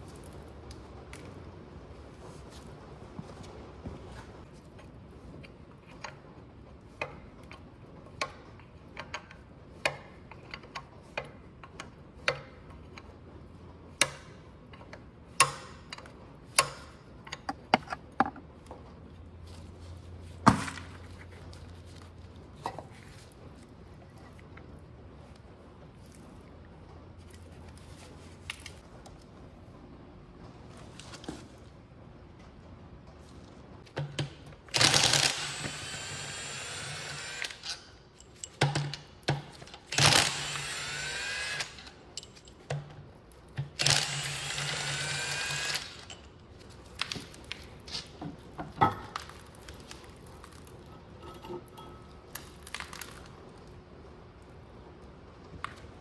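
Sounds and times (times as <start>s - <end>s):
power tool motor spinning up: 34.7s - 37.8s, 39.9s - 41.9s, 43.8s - 46.1s
metal tools clinking and knocking: 51.2s - 52.3s.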